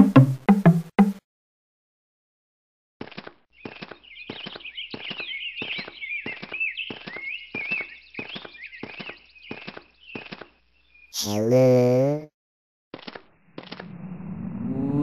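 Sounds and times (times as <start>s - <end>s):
cartoon footsteps: 0.0s - 1.2s, 3.0s - 10.6s, 12.9s - 14.0s
high twittering chirps: 3.6s - 11.4s.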